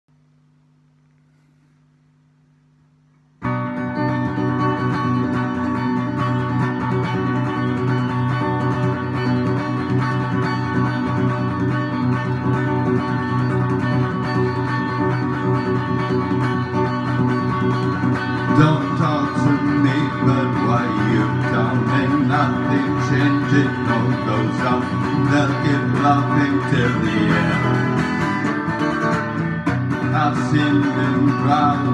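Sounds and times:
electric guitar rock chords: 0:03.4 - 0:31.9.

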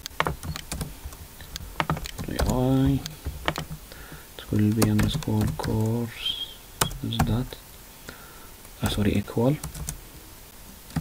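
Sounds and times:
keyboard typing clicks: 0:00.0 - 0:03.8, 0:04.5 - 0:06.0, 0:06.8 - 0:07.4.

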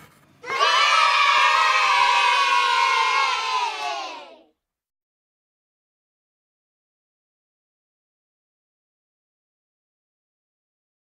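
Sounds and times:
children cheering: 0:00.4 - 0:04.5.

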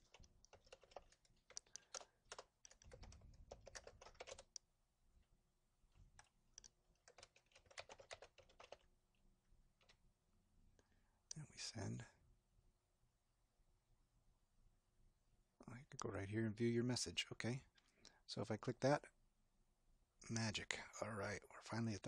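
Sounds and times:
typing on computer keyboard: 0:00.0 - 0:04.6, 0:06.2 - 0:08.9.

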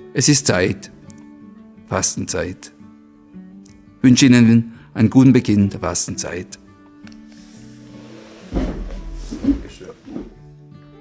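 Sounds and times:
quiet background music: 0:00.0 - 0:11.0
person moving near microphone: 0:07.4 - 0:10.4.

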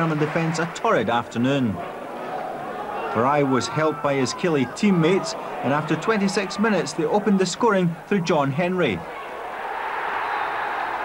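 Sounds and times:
football crowd cheering: 0:00.0 - 0:11.0.

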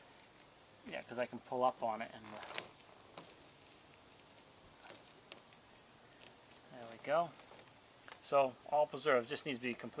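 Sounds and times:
adhesive clicks and crackles: 0:02.1 - 0:08.9.

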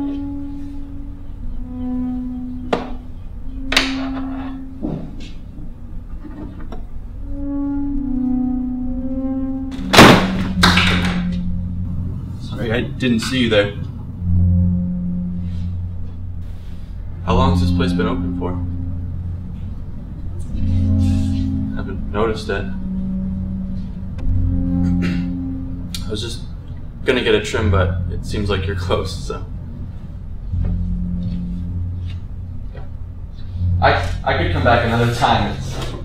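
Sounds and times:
film score with low held notes: 0:00.0 - 0:36.0
low music drone: 0:00.0 - 0:36.0
low rumble: 0:06.8 - 0:36.0.

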